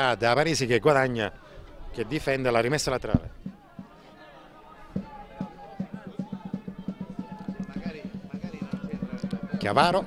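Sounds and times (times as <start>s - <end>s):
drum beating fast rhythm: 3.2s - 4.0s, 4.9s - 10.0s.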